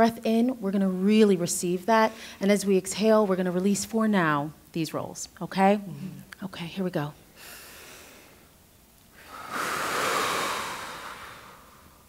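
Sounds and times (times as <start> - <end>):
person breathing out: 9.2 - 12.0.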